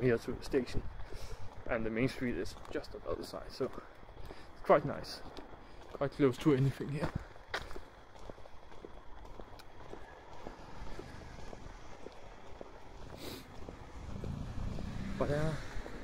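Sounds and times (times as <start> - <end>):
footsteps walking: 0.1 - 16.0
low rumble: 10.1 - 16.0.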